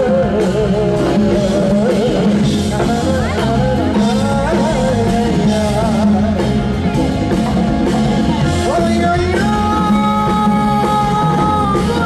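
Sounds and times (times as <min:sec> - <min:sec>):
live band accompaniment: 0:00.0 - 0:12.0
man singing with vibrato: 0:00.0 - 0:12.0.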